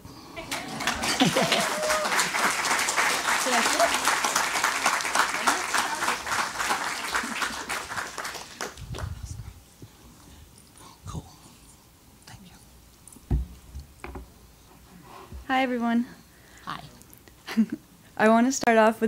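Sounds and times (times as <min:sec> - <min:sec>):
audience applauding: 0:00.4 - 0:09.4
voices: 0:00.4 - 0:09.5
person laughing: 0:00.8 - 0:02.2.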